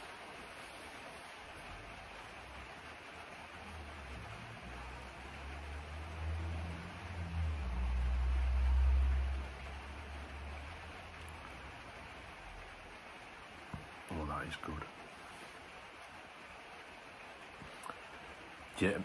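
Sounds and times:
rain on a roof: 0.0 - 19.0.

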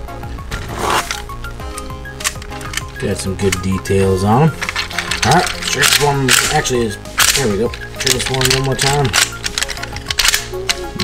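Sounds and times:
background music: 0.0 - 11.0
plastic parts clicking: 1.0 - 11.0.

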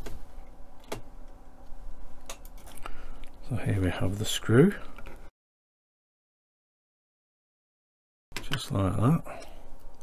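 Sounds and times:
faint room hum: 0.0 - 5.3, 8.4 - 10.0.

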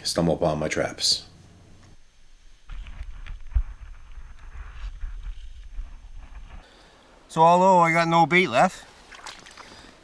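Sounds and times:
microphone handling rumble: 2.6 - 6.6.

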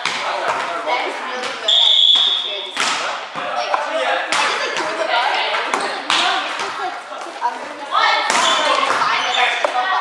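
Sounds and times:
players shouting in gymnasium: 7.8 - 10.0.

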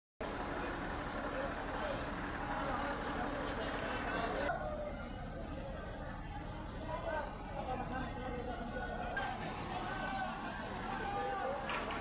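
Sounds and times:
indistinct voices: 0.2 - 12.0
traffic rumble: 0.2 - 12.0.

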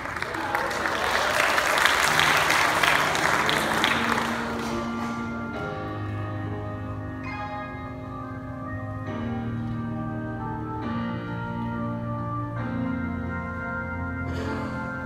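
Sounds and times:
audience applause: 0.0 - 5.4
slow held music chords: 3.2 - 15.0.

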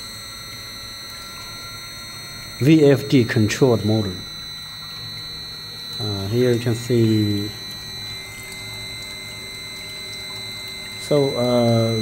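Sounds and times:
machine low hum: 0.0 - 12.0
motor high-pitched whine: 0.0 - 12.0.

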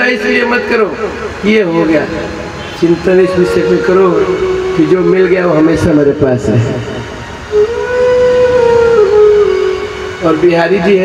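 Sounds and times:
long held musical note: 0.8 - 11.0.

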